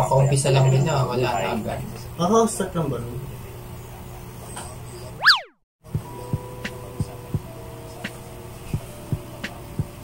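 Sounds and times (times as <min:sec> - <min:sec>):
cartoon boing sound effect: 0:05.2 - 0:05.5
background music with low beats: 0:05.8 - 0:10.0.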